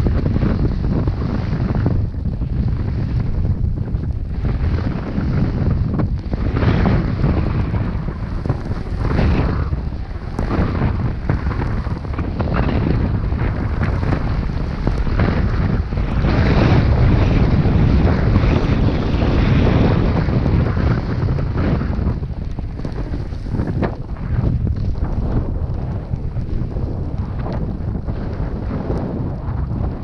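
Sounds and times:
ski edges carving snow: 0:00.0 - 0:30.0
wind buffeting microphone: 0:00.0 - 0:30.0.

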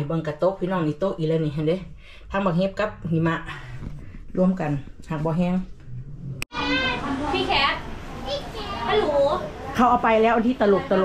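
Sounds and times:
woman talking: 0:09.8 - 0:11.0.

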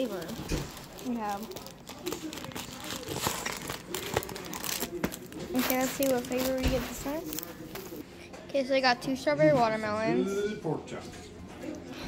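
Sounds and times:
plastic wrapper crinkling: 0:00.0 - 0:08.0.

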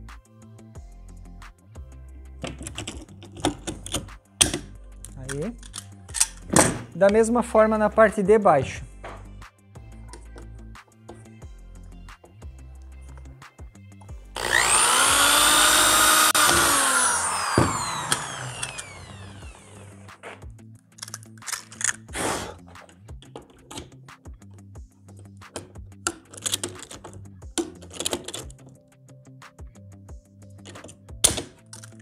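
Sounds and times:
hand tools clicking and knocking: 0:02.4 - 0:06.9, 0:25.5 - 0:28.8
electric drill boring metal: 0:14.4 - 0:20.1.

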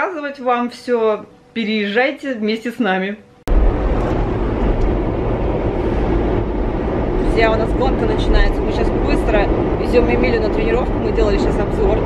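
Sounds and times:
car engine and road noise: 0:03.5 - 0:12.0.

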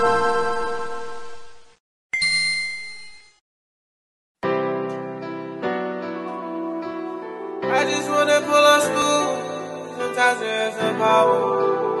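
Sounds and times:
bell-like chime notes: 0:02.2 - 0:03.4.

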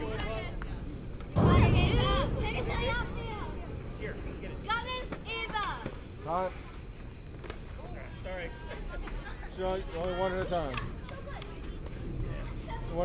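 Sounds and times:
girls calling and cheering: 0:00.0 - 0:13.0.

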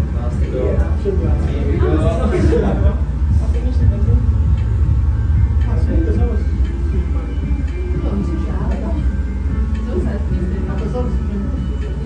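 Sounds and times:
people talking: 0:00.0 - 0:04.6, 0:05.4 - 0:12.0
loud low rumble: 0:00.0 - 0:11.6.

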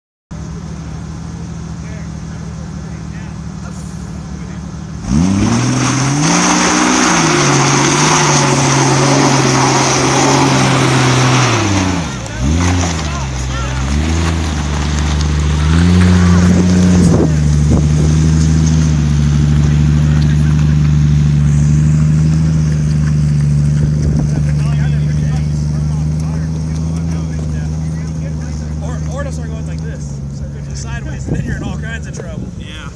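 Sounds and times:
engine revving under load: 0:02.3 - 0:32.9.

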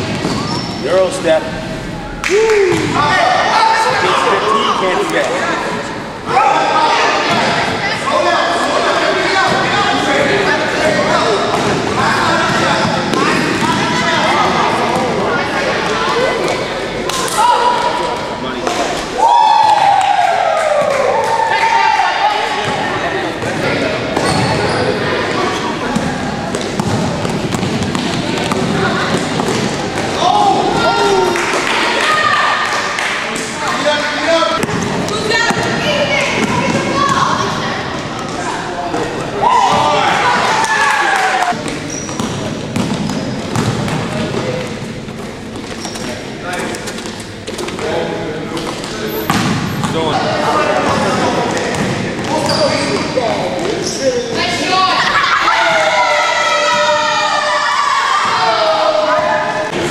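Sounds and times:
ball bouncing on hardwood floor: 0:42.1 - 0:44.0.

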